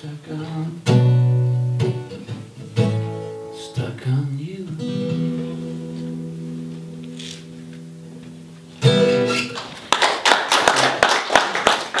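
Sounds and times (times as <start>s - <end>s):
small audience applauding: 9.1s - 12.0s.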